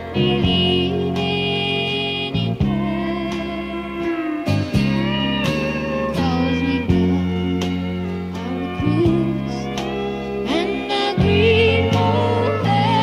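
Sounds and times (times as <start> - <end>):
country band playing waltz: 0.0 - 13.0
steel guitar sliding notes: 0.0 - 13.0.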